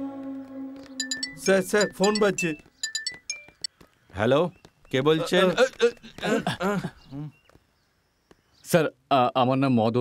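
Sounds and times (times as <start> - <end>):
background music: 0.0 - 3.7
men speaking: 1.2 - 2.7, 4.1 - 7.4, 8.6 - 10.0.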